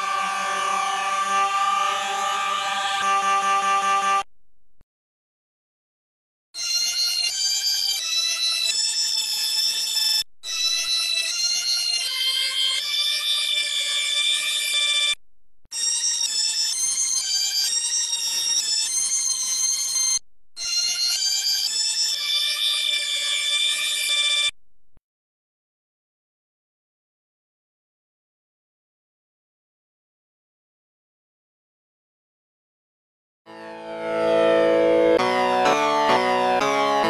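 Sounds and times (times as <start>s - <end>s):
synthesized organ held notes: 0.0s - 4.3s, 33.5s - 37.0s.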